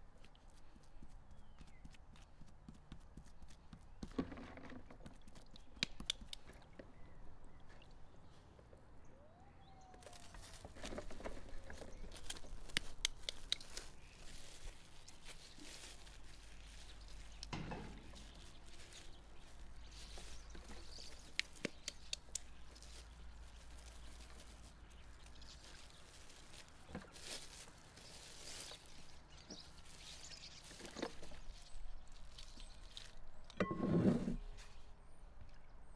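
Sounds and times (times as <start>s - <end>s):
cling film crinkling: 10.0s - 33.4s.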